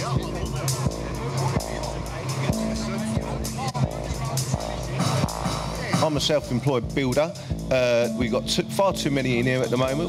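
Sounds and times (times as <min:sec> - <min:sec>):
protest crowd voices: 0:00.0 - 0:06.2
background music low notes: 0:00.0 - 0:10.0.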